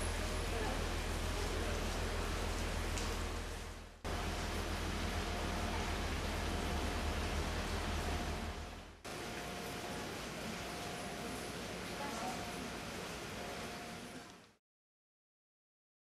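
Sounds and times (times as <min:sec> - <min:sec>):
rain hissing: 0:00.0 - 0:14.3.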